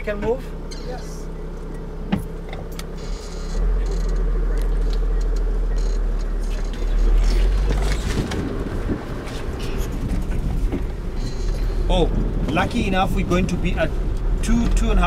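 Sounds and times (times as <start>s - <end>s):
vehicle engine and road rumble: 0.0s - 15.0s.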